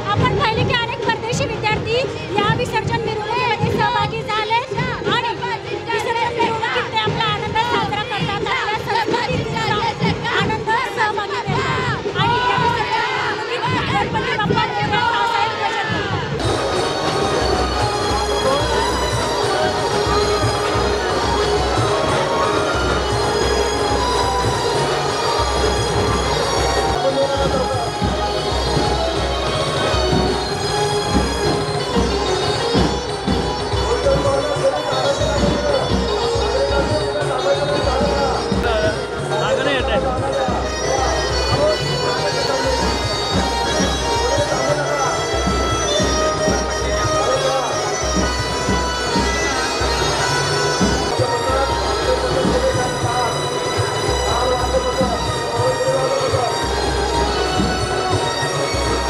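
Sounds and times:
drum band playing loudly: 6.9s - 59.0s
wavering melody: 16.4s - 59.0s.

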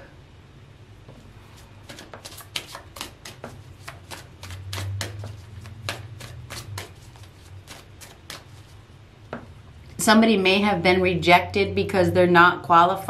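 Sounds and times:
cards being shuffled: 1.6s - 8.8s.

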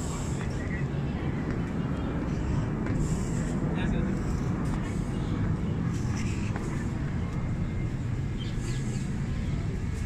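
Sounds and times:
faint voices: 0.0s - 10.0s
low outdoor rumble: 0.0s - 10.0s
footsteps walking: 1.4s - 3.4s.

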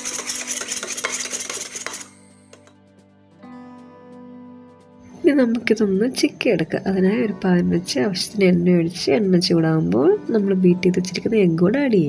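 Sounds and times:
spoon whisking eggs in metal bowl: 0.0s - 2.7s.

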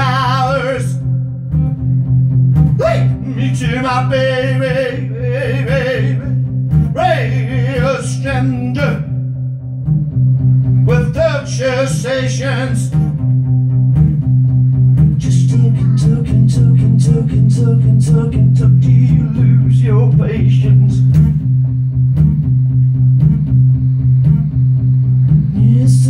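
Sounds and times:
man singing: 0.0s - 1.0s, 2.8s - 9.2s, 10.8s - 13.0s, 15.2s - 21.2s, 25.5s - 26.0s
acoustic guitar riff: 0.0s - 26.0s.

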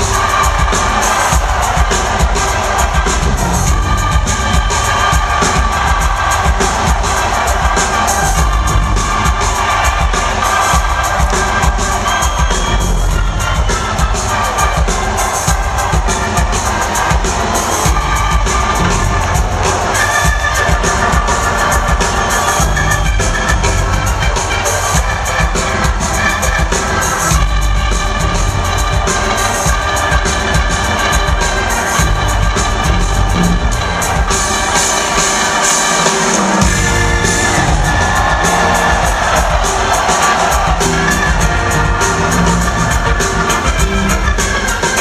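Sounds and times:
crowd cheering: 0.0s - 45.0s
live band playing: 0.0s - 45.0s.

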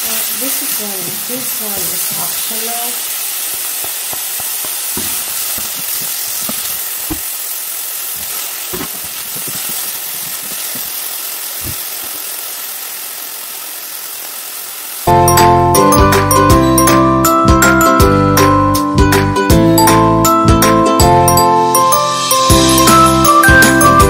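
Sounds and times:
food sizzling in oil: 0.0s - 17.4s.

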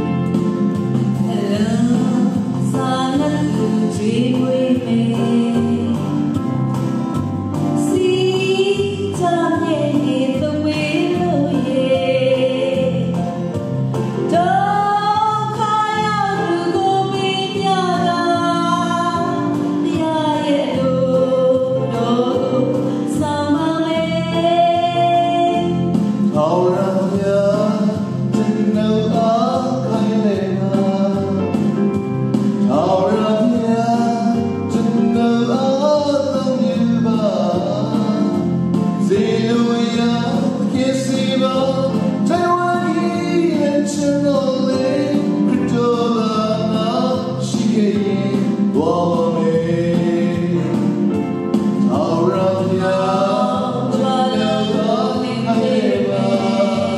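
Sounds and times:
musical accompaniment: 0.0s - 56.9s
woman singing: 1.2s - 6.2s, 7.8s - 13.3s, 14.2s - 26.0s, 52.3s - 56.9s
man singing: 1.2s - 6.4s, 15.4s - 56.9s.

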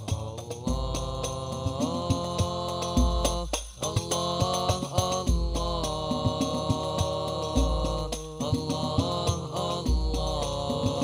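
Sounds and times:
hand-struck frame drums: 0.0s - 11.0s
person singing: 0.0s - 11.0s.

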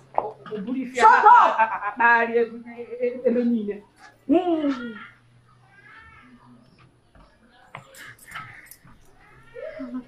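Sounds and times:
distant animal cry: 4.8s - 6.6s, 8.0s - 10.0s.

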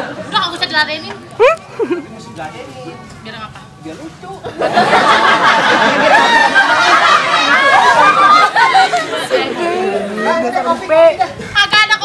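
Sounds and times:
people talking at once: 5.7s - 12.0s.

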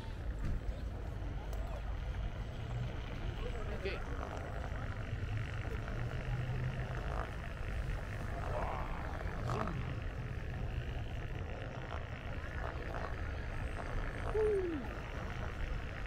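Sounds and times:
faint voices: 0.0s - 16.0s
wheel rolling over stone paving: 2.0s - 16.0s.

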